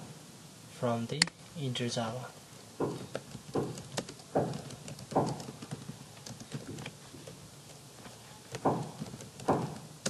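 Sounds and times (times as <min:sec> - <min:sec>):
heavier thuds: 0:02.8 - 0:05.6, 0:08.6 - 0:09.8
keyboard key clicks: 0:02.8 - 0:07.4.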